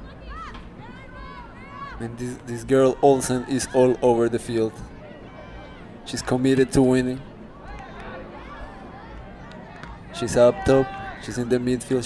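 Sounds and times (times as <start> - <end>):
crowd hum: 0.0 - 12.0.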